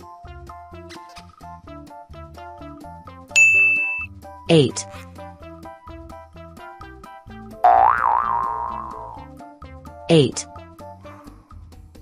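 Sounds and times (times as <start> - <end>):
children's music plinking melody: 3.4 - 4.8, 7.7 - 9.2
cartoon boing sound effect: 7.6 - 9.2.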